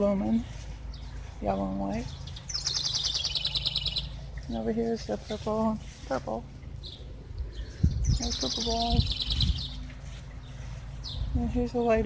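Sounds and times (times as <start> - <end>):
songbird trill: 0.0 - 12.0.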